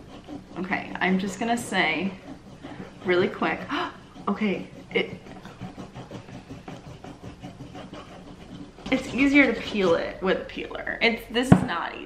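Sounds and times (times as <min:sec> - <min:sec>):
peeler rasping on potato skin: 0:00.0 - 0:10.2.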